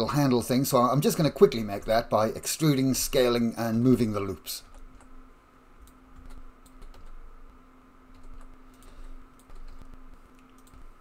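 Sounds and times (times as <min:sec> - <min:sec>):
faint steady hum: 0:00.0 - 0:11.0
keyboard keystrokes and clicks: 0:05.8 - 0:07.2, 0:08.1 - 0:10.9.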